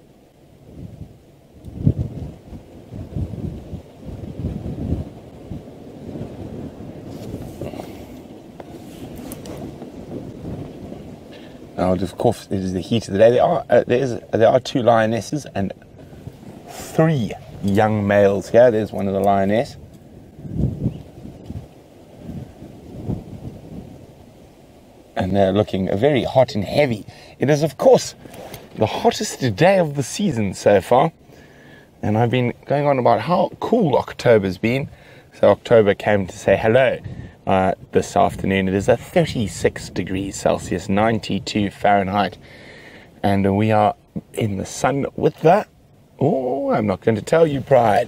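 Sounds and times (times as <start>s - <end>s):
wind buffeting microphone: 0.0s - 48.0s.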